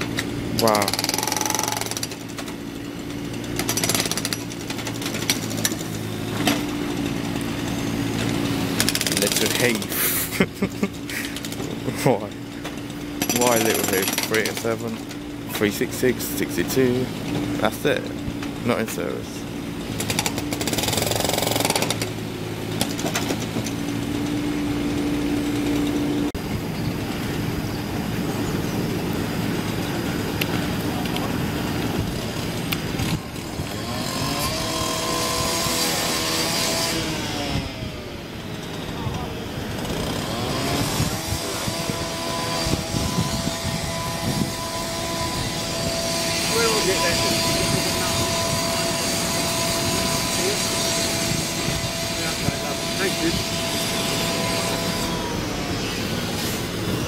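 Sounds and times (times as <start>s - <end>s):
bus engine whine: 4.4s - 13.1s, 15.0s - 57.0s.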